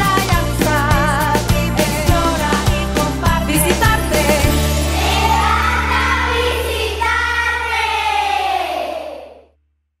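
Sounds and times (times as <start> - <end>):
jingle music with bass note: 0.0 - 7.7
children singing: 4.2 - 9.4.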